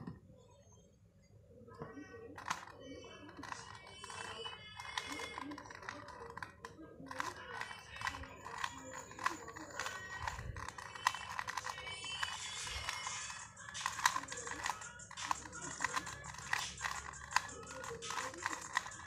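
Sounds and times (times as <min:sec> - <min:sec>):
faint music: 0:00.0 - 0:19.0
puzzle cube clicking: 0:02.4 - 0:19.0.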